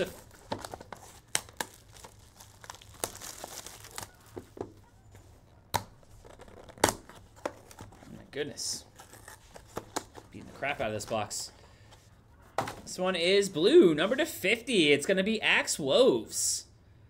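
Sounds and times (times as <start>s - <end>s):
plastic wrapping crinkling and tearing: 0.0s - 4.6s, 8.8s - 11.1s.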